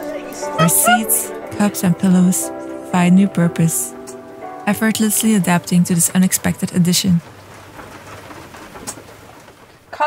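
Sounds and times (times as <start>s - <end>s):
dove cooing: 0.6s - 1.3s.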